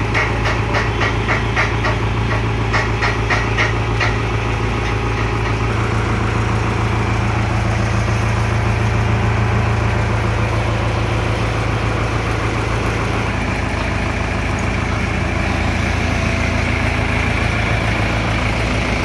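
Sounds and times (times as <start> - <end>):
tractor diesel engine idling: 0.0 - 19.0.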